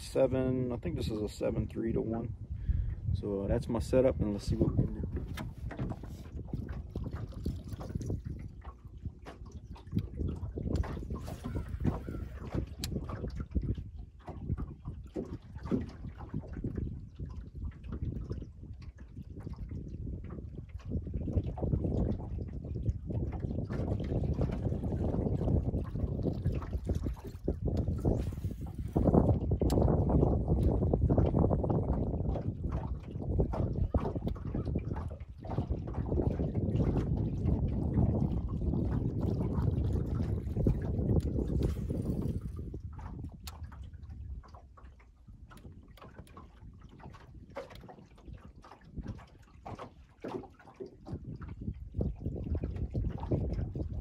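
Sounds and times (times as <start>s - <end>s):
water lapping against boat hull: 0.0s - 54.0s
wind buffeting microphone: 0.0s - 54.0s.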